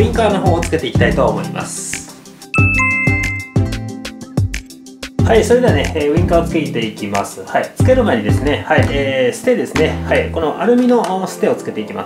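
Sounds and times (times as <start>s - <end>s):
music with a beat: 0.0s - 11.6s
bright bell-like chime: 2.5s - 4.0s.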